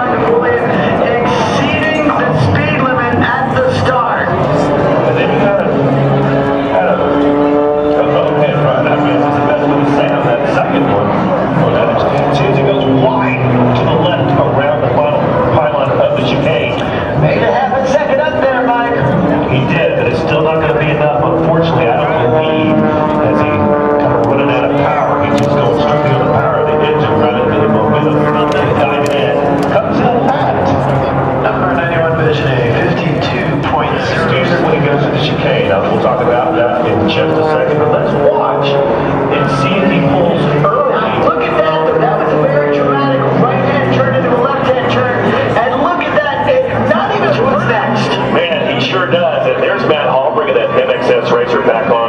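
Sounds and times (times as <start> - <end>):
indistinct voices: 0.0 - 52.0
propeller plane engine at high power: 0.0 - 52.0.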